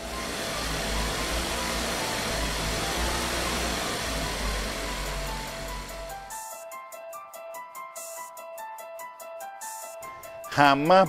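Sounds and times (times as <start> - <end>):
rumbling and hissing noise: 0.0 - 6.3
soft piano music: 0.0 - 11.0.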